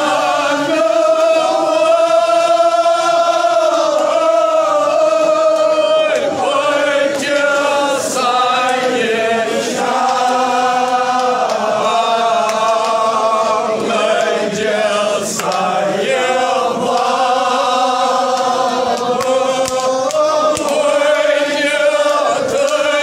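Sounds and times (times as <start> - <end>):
crowd chanting: 0.0 - 23.0.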